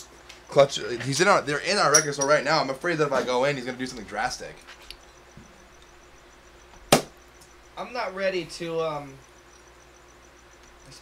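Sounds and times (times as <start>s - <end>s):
sharp loud knock: 6.9s - 7.1s.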